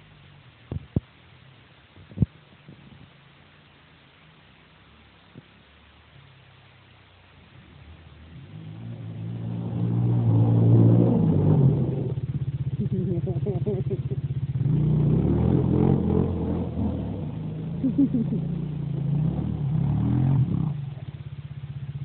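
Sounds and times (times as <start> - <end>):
car engine revving hard: 7.8 - 12.3, 14.6 - 21.2.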